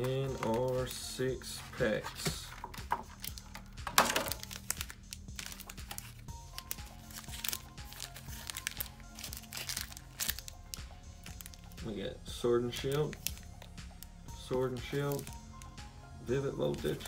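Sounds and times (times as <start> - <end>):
foil packs crinkling: 0.0 - 0.9, 2.1 - 11.7, 14.8 - 15.4
background music: 0.0 - 17.0.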